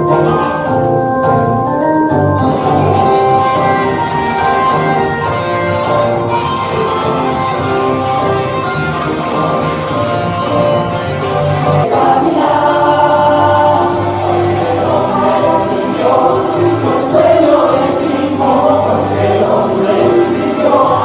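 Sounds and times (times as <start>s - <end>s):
instrumental backing: 0.0s - 21.0s
group singing christian song: 0.1s - 0.7s, 11.8s - 21.0s.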